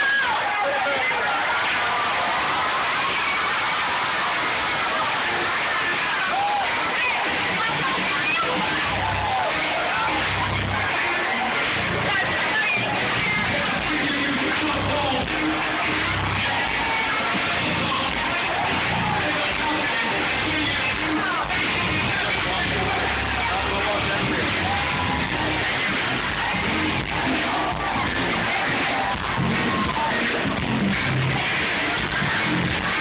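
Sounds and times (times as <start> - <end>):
audience cheering and clapping: 0.0 - 33.0
live band with guitar and keyboards: 0.0 - 33.0
scattered shouting voices: 0.0 - 33.0.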